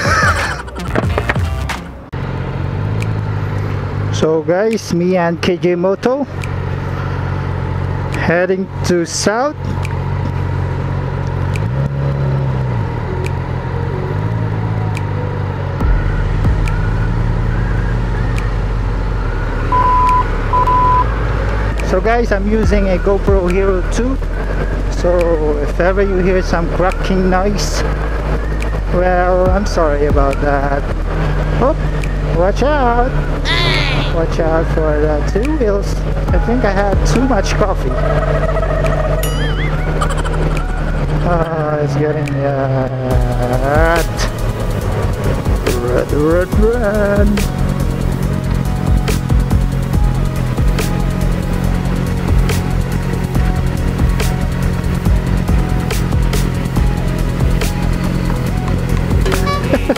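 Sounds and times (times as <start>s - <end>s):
road and wind noise: 0.0s - 59.9s
motorcycle engine running: 2.1s - 19.5s, 20.1s - 33.4s, 34.1s - 59.9s
short high beeps: 19.7s - 21.1s, 59.3s - 59.9s
warbling whistle-like sound: 39.1s - 40.1s.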